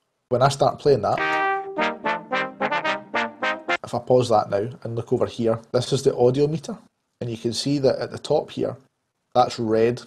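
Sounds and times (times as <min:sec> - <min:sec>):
trombone notes: 0:01.2 - 0:04.0.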